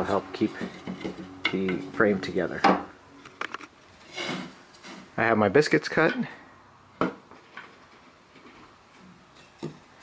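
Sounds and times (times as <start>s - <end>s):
handling wooden pieces: 0.0s - 5.2s, 7.0s - 10.0s
wooden pieces knocking: 0.6s - 1.9s.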